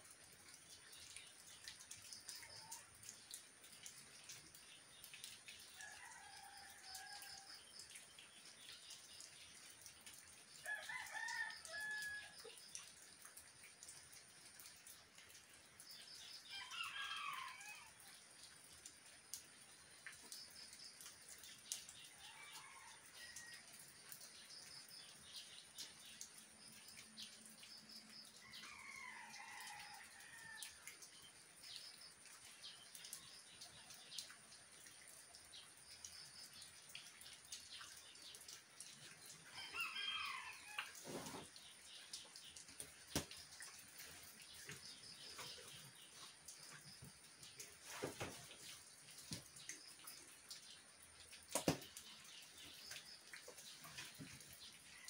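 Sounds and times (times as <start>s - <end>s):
faint steady rain: 0.0s - 55.0s
water drips: 0.0s - 55.0s.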